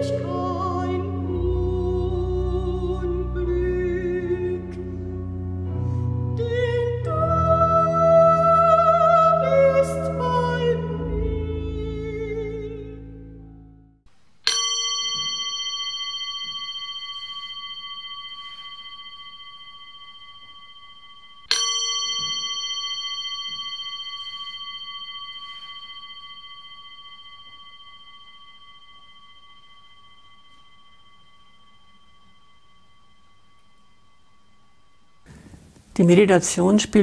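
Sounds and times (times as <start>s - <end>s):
meditation bell ringing: 14.4s - 36.2s.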